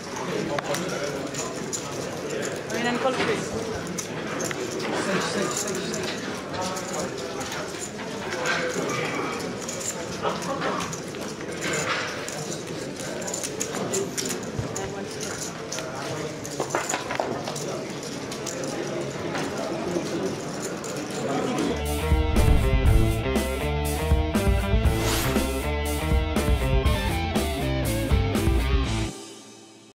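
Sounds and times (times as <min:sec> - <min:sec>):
chatter of many voices: 0:00.0 - 0:24.1
rock music with electric guitar: 0:21.9 - 0:29.1.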